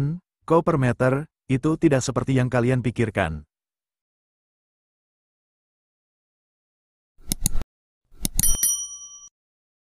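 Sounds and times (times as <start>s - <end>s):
bright bell ding: 8.4s - 9.3s.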